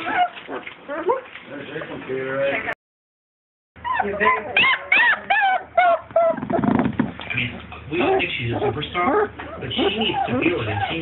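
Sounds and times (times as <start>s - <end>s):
puppy whimpering: 0.0s - 1.2s, 3.8s - 6.8s, 8.0s - 11.0s.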